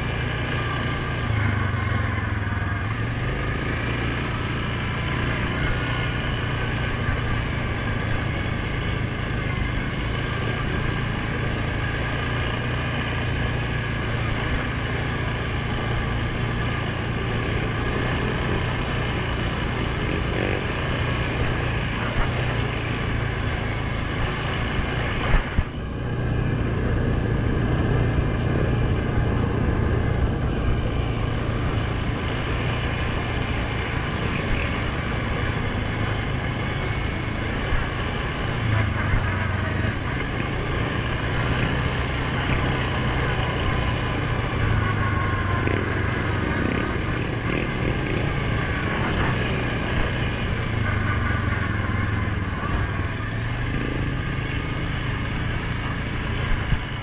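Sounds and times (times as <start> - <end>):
quad bike engine running: 0.0 - 57.0.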